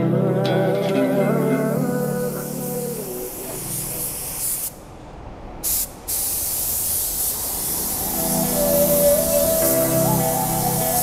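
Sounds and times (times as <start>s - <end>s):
spray gun hissing: 1.2s - 4.9s, 5.6s - 11.0s.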